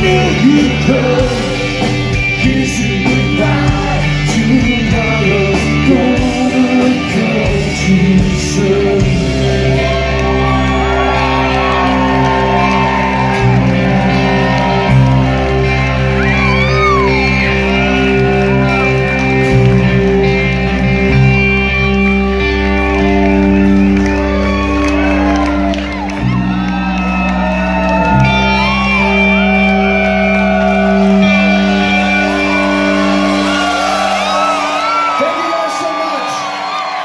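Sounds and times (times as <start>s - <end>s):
live rock band playing: 0.0s - 37.0s
crowd shouting and whooping: 8.6s - 37.0s.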